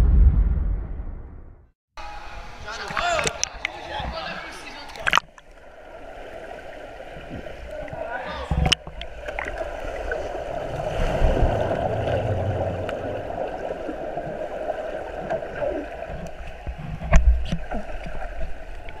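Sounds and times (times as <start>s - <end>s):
heavy low thump: 0.0s - 1.7s.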